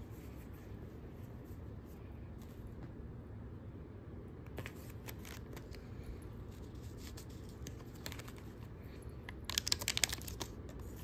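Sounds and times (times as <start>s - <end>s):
foil packets crinkling: 9.4s - 11.0s.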